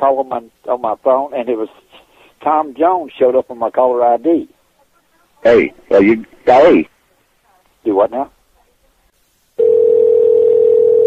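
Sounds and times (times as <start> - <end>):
telephone line tone: 9.6 - 11.0.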